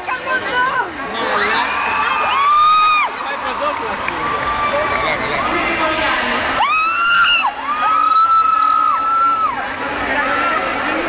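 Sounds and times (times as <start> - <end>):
crowd cheering: 1.1 - 11.0
high-pitched screams: 6.6 - 9.6.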